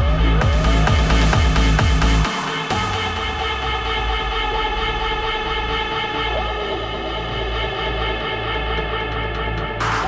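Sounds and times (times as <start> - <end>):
deep bass: 0.0 - 10.0.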